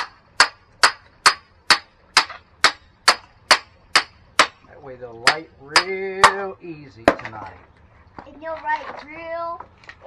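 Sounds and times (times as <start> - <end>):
hammer striking metal hatchet: 0.0 - 4.6, 5.2 - 6.4.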